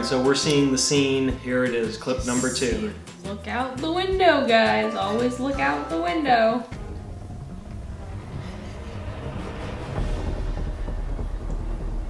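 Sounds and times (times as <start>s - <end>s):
tornado deep rumbling roar: 6.3s - 12.0s.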